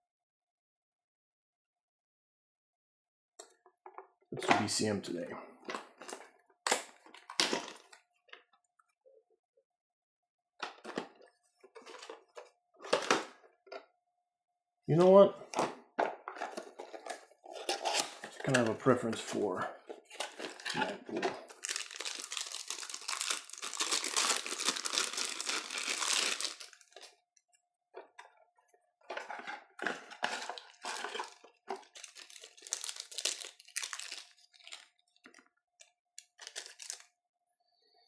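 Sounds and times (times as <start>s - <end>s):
plastic packaging tearing: 17.5s - 18.7s, 20.1s - 27.1s, 29.8s - 34.9s, 36.3s - 37.1s
plastic crinkling: 20.0s - 27.2s, 29.2s - 35.4s, 36.2s - 37.1s.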